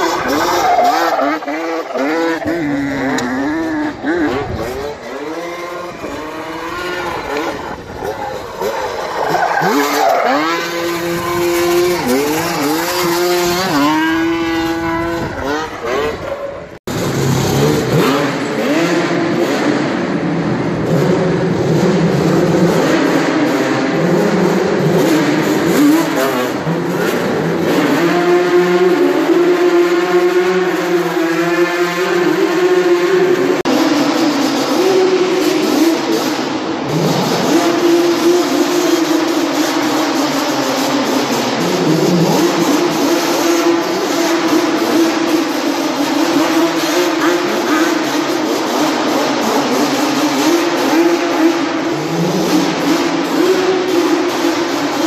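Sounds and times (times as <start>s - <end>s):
two-stroke quad engine revving: 0.0s - 55.0s.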